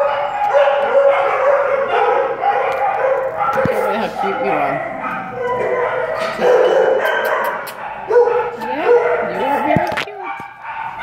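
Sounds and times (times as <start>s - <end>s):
dogs barking and howling: 0.0s - 11.0s.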